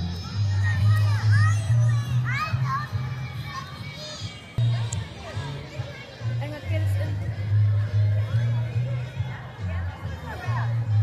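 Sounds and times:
children calling out: 0.0s - 6.4s
music with low bass line: 6.3s - 11.0s.

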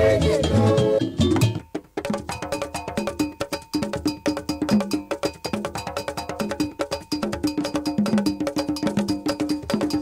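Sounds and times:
drums playing quick rhythm: 0.0s - 10.0s.

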